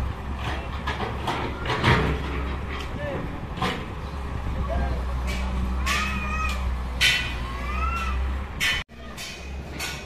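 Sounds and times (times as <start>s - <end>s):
street voices: 0.0s - 10.0s.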